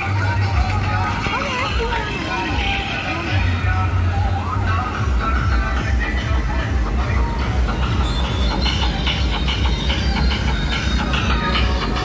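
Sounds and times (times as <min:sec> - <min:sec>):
voices: 0:00.0 - 0:08.9
music: 0:00.0 - 0:12.0
wind and road rumble: 0:00.0 - 0:12.0.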